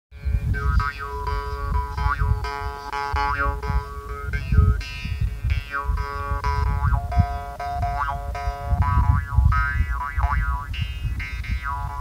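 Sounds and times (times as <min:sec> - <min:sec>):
mouth harp twanging: 0:00.5 - 0:12.0.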